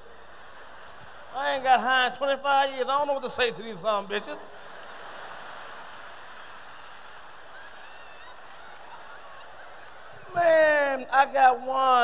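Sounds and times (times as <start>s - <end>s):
audience laughing: 0.0s - 2.0s, 4.3s - 10.6s.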